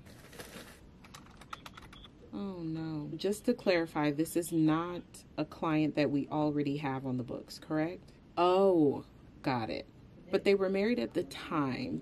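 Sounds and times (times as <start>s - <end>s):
computer keyboard typing: 0.3s - 2.1s.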